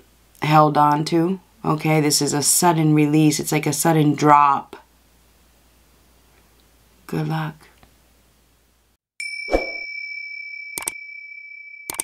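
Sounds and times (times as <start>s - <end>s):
high ding: 9.2s - 12.0s.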